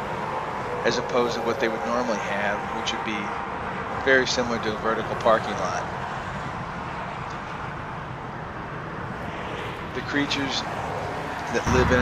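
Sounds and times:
distant traffic rumble: 0.0s - 12.0s.

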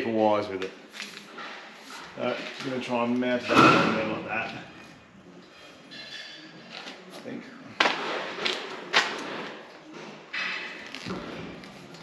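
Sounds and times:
scrape on metal: 4.7s - 6.5s.

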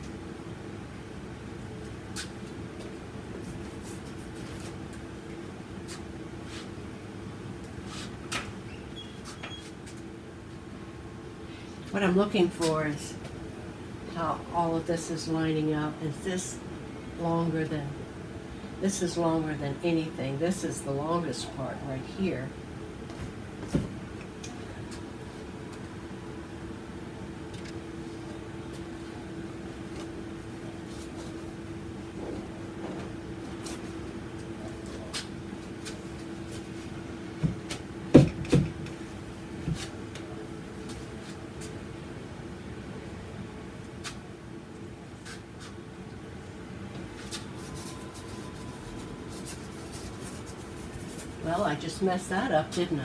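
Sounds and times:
low room hum: 0.0s - 53.0s.

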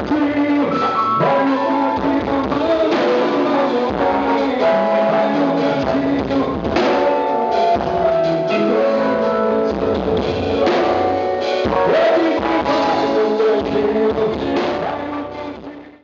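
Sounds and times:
live band dance groove: 0.0s - 15.9s.

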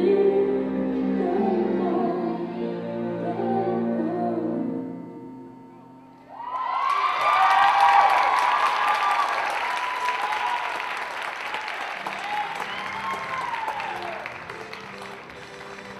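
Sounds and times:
high-pitched cheering: 6.2s - 15.0s
audience applause: 6.4s - 15.9s.

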